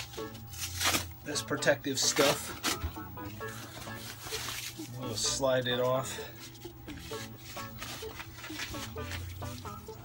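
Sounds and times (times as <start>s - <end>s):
protective sheet rustling: 2.2s - 5.2s.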